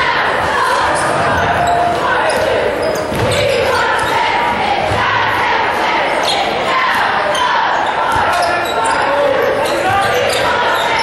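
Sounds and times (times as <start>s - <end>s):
crowd chatter and calls: 0.0s - 11.0s.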